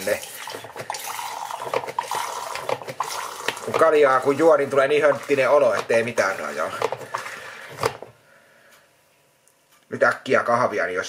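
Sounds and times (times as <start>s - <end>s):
running water rushing: 0.0s - 7.4s.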